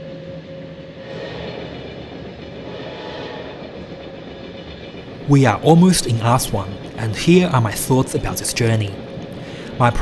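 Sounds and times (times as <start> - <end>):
train rumble and hiss: 0.0 - 10.0.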